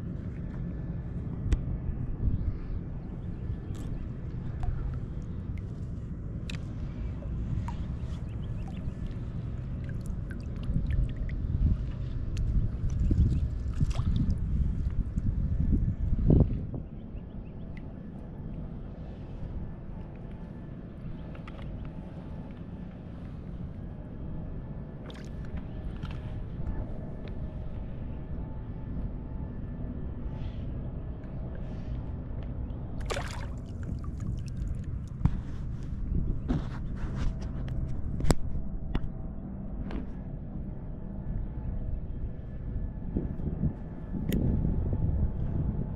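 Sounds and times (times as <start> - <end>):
wind rumbling on microphone: 0.0 - 45.9
shallow water sloshing: 3.5 - 14.9, 33.0 - 38.3
fish splashing into water: 33.0 - 34.7.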